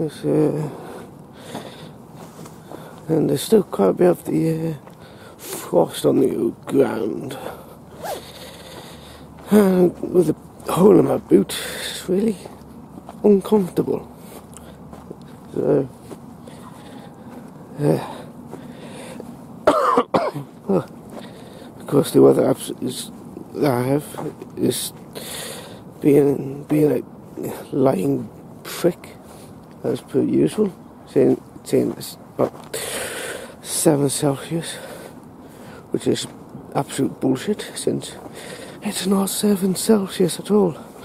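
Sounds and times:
faint background noise: 0.0s - 41.0s
short breath: 0.7s - 2.0s, 5.0s - 5.6s, 7.4s - 9.3s, 18.1s - 19.2s, 25.2s - 25.8s, 32.8s - 33.6s, 34.8s - 35.9s, 38.3s - 38.8s
man coughing: 19.6s - 20.5s.

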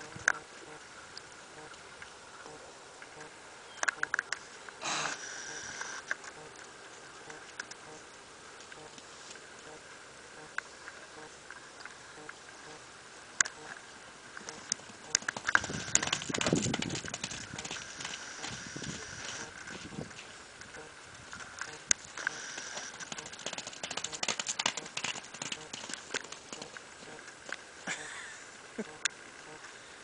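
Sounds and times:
hoofbeats on wet grass: 14.4s - 27.6s.

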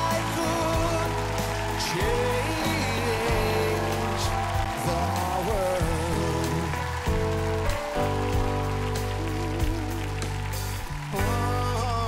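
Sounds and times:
live band playing slow ballad: 0.0s - 12.0s.

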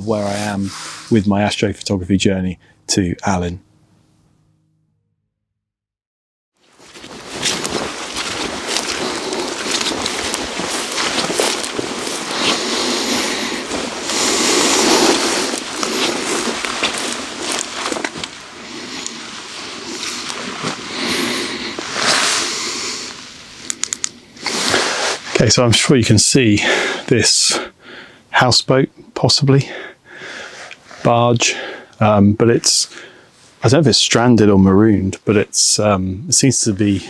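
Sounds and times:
footsteps through dry grass: 6.6s - 23.7s
sharp clicks: 23.6s - 24.2s.

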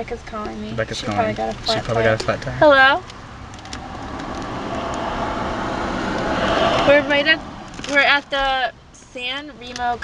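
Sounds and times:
passing vehicle tyre and engine noise: 1.7s - 8.9s.

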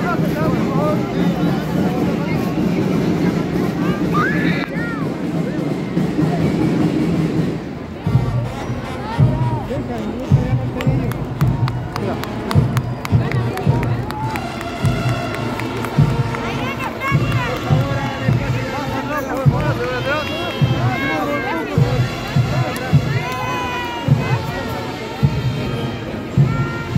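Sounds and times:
crowd chatter: 0.0s - 26.9s
marching band instruments: 0.0s - 26.9s
bass drum beating: 10.2s - 18.8s.

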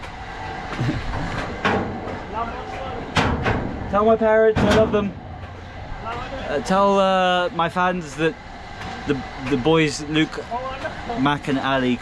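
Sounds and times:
steady low rattle: 0.6s - 12.0s
metal clanking of ride: 0.7s - 11.5s.

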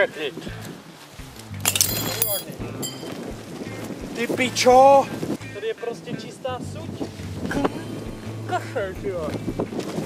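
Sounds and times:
sharp metallic clink: 1.7s - 3.2s.

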